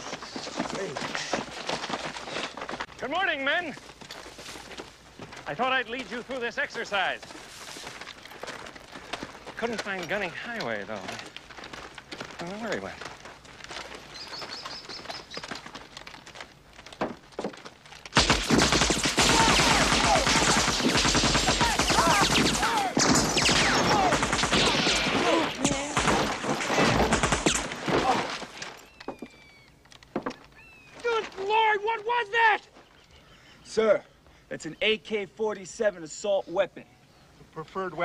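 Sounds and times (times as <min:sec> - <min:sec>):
automatic rifle fire: 0:18.1 - 0:27.8.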